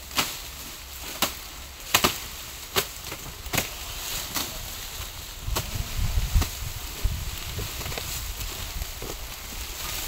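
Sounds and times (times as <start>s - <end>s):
machete chopping sugarcane stalks: 0.0s - 6.6s.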